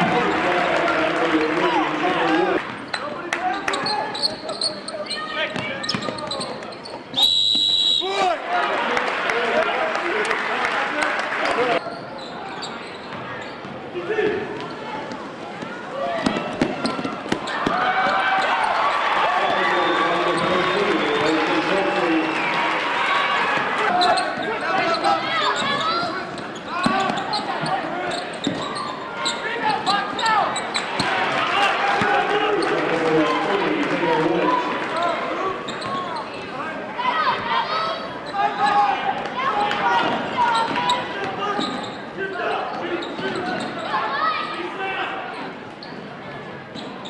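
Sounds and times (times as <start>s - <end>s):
crowd and players shouting: 0.0s - 6.6s, 8.0s - 11.9s, 14.0s - 45.4s
gym hall din: 0.0s - 47.0s
sneakers squeaking: 2.7s - 7.8s, 11.4s - 19.0s, 19.7s - 21.4s, 23.5s - 31.2s, 35.0s - 36.6s, 39.5s - 44.6s, 45.3s - 47.0s.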